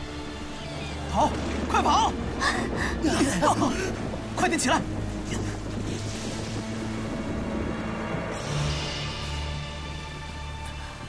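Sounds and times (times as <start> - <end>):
background music held notes: 0.0 - 11.0
wind and rain rushing: 0.0 - 11.0.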